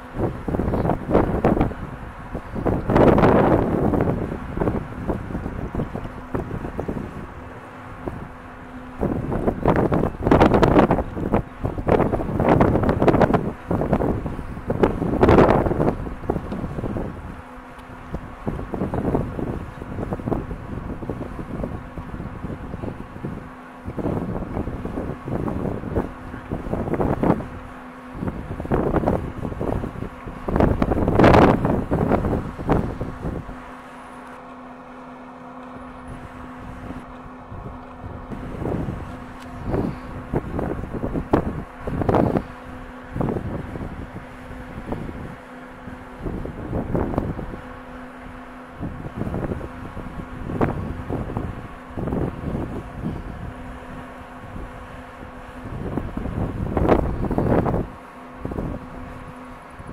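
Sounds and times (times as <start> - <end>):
gusty wind buffeting microphone: 0.0 - 34.4, 35.4 - 59.9
faint steady hum: 0.0 - 59.9.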